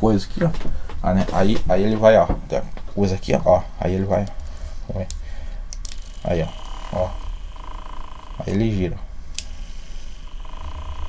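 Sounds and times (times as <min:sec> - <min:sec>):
small electric motor whine: 0:05.9 - 0:08.8, 0:09.4 - 0:11.0.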